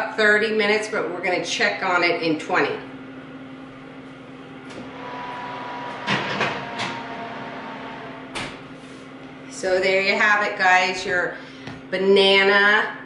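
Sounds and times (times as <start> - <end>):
steady low hum: 1.0 - 12.6.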